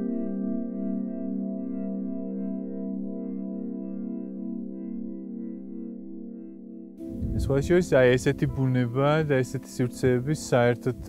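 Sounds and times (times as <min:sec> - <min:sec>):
ambient music: 0:00.0 - 0:11.0.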